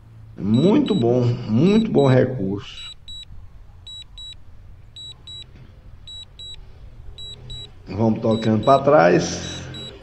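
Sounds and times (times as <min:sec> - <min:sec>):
high-pitched double beeps: 0:00.4 - 0:01.2, 0:02.8 - 0:03.3, 0:03.9 - 0:04.4, 0:05.0 - 0:05.5, 0:06.1 - 0:06.6, 0:07.2 - 0:10.0.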